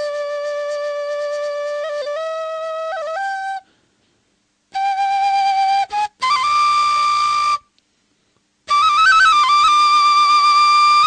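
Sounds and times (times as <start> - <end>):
solo flute-like melody: 0.0 - 3.7, 4.7 - 7.8, 8.6 - 11.0.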